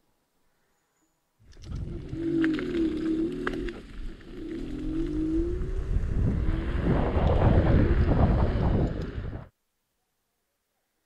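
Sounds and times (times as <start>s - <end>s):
road rumble: 1.4s - 9.5s
wind buffeting microphone: 1.5s - 9.5s
electric scooter motor whine: 1.6s - 7.4s.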